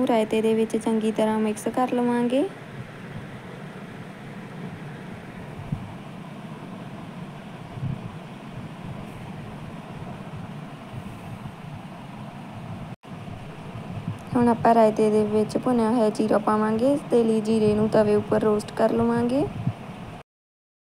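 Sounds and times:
low background hum: 0:00.0 - 0:20.2.

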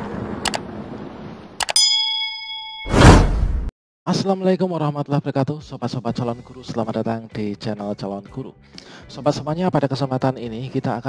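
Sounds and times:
clicks: 0:01.6 - 0:01.8
bell-like ding: 0:01.7 - 0:03.3
loud whoosh: 0:02.9 - 0:03.7.

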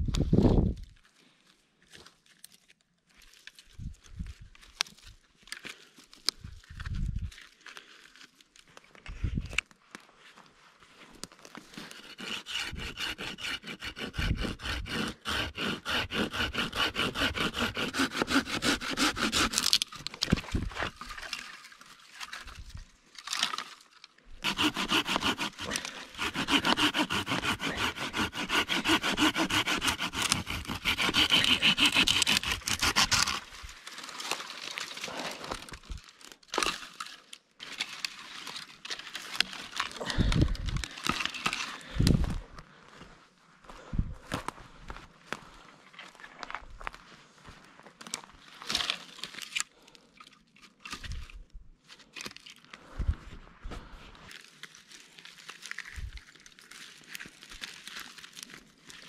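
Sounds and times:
hand saw cutting branch: 0:11.8 - 0:20.0, 0:24.4 - 0:33.7.

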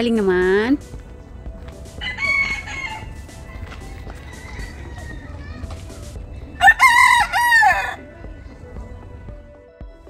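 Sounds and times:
rooster crowing: 0:02.0 - 0:05.5, 0:06.6 - 0:08.0.

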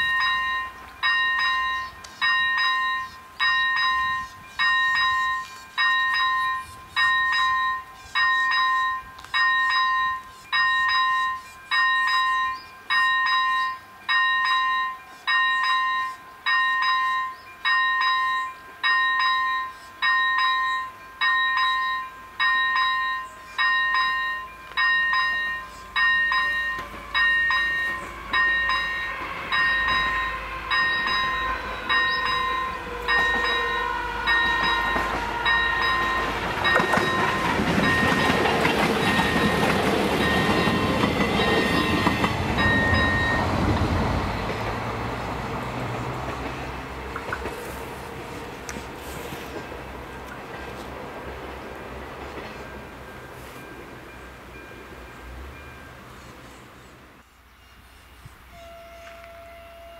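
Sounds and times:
level crossing warning bell: 0:00.0 - 0:47.9, 0:52.0 - 0:56.6
train rumble: 0:00.0 - 0:59.9.

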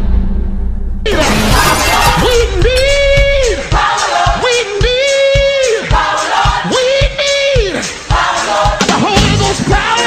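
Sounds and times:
low boom: 0:00.0 - 0:03.9
bright crash: 0:00.0 - 0:04.2
music: 0:00.0 - 0:10.0.

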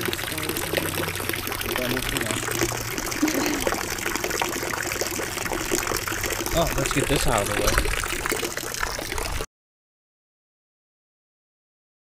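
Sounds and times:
water splashing and pouring: 0:00.0 - 0:09.5.

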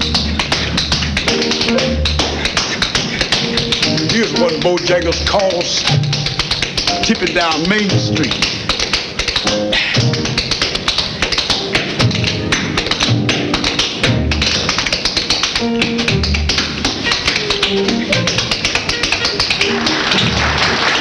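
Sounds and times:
tap-shoe clicks: 0:00.0 - 0:20.2
band music: 0:03.4 - 0:08.4, 0:15.6 - 0:21.0.

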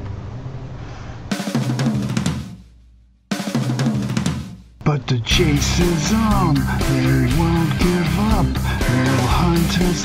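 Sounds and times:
drum fills: 0:01.3 - 0:10.0.

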